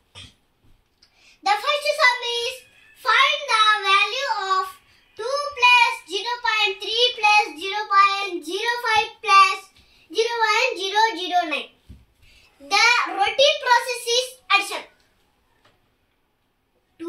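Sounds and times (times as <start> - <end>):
boy speaking in sing-song voice: 1.4 - 11.7, 12.6 - 14.9.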